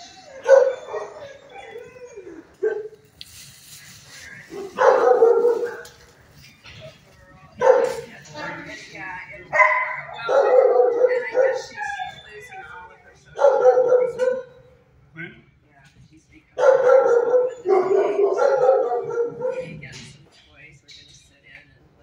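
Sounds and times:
dog barking: 0.4 - 1.2, 4.5 - 5.9, 7.6 - 8.0, 9.5 - 11.7, 13.4 - 14.6, 16.6 - 19.8.

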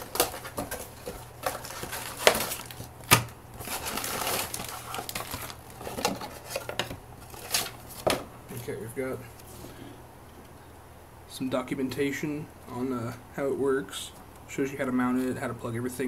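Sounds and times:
cardboard box being opened: 0.0 - 2.9, 3.6 - 8.2
plastic bag crinkling: 0.0 - 8.2.

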